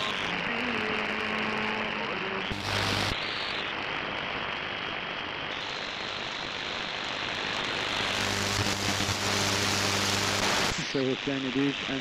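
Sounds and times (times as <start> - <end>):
radio static and hiss: 0.0 - 12.0.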